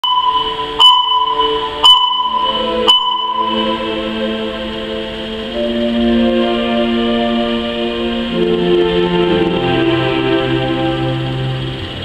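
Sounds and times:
electronic click and ping: 0:00.0 - 0:03.6
low sustained synth chord: 0:00.0 - 0:12.0.

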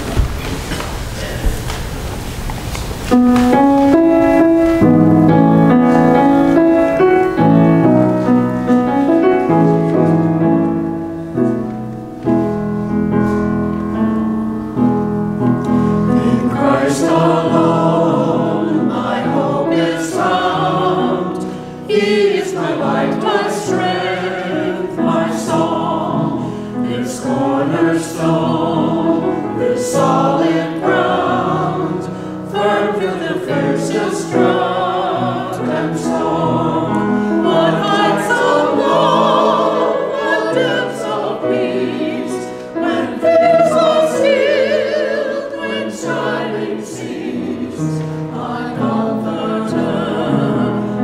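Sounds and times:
mixed choir singing: 0:03.5 - 0:11.6, 0:15.7 - 0:51.0.

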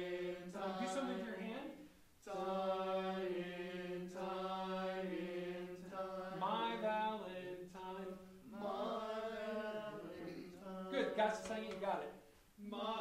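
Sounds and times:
men's chorus singing in harmony: 0:00.0 - 0:11.9, 0:12.6 - 0:13.0.

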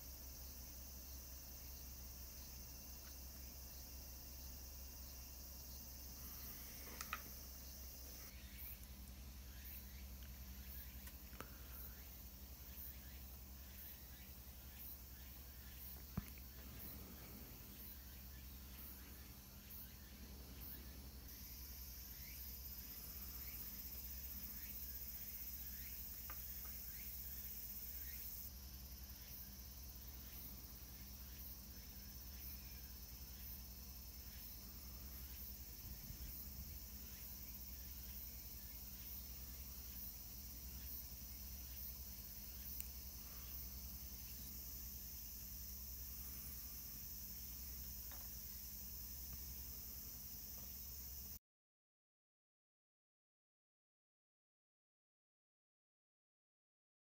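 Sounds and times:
high-pitched insect chirring: 0:00.0 - 0:51.4.

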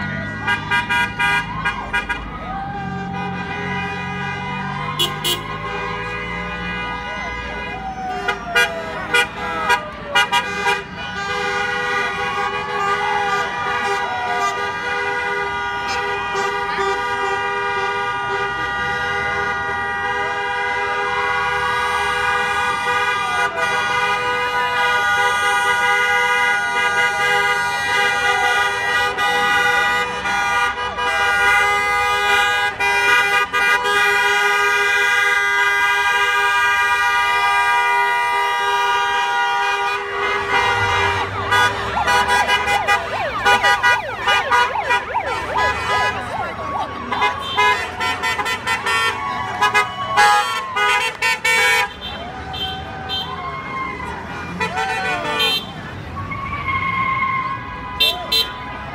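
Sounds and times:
people shouting and cheering: 0:00.0 - 0:10.2, 0:40.6 - 0:55.6, 0:56.2 - 0:58.9
vehicles rolling past: 0:00.0 - 0:58.9.

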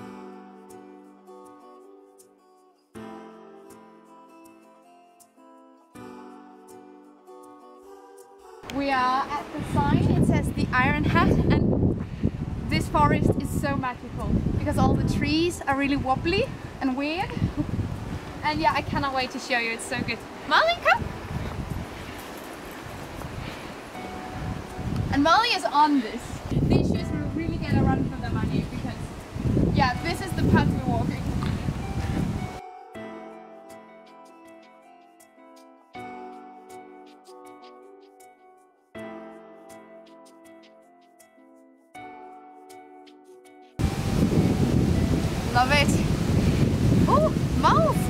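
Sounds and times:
soft background music: 0:00.0 - 0:48.0
wind rustling through trees: 0:07.4 - 0:32.6, 0:39.6 - 0:48.0
wind buffeting microphone: 0:09.3 - 0:32.6, 0:43.8 - 0:48.0.

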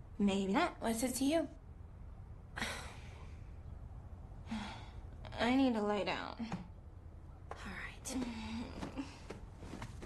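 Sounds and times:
faint low room hum: 0:00.0 - 0:10.0
woman sighing: 0:02.6 - 0:03.1.

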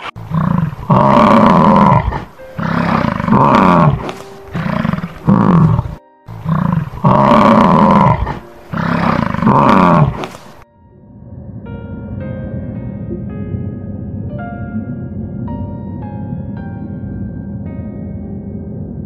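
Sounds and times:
lion roaring: 0:00.0 - 0:10.6
soft background music: 0:00.0 - 0:19.0.

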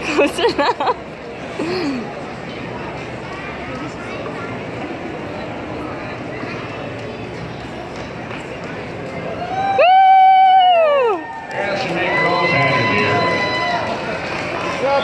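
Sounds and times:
arena crowd murmur: 0:00.0 - 0:15.0.

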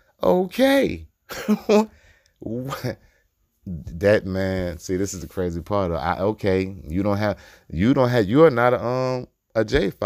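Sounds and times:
man laughing: 0:01.3 - 0:01.9.

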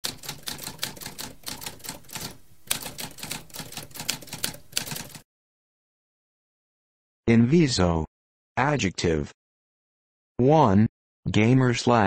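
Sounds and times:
typewriter keys clicking: 0:00.0 - 0:05.2.

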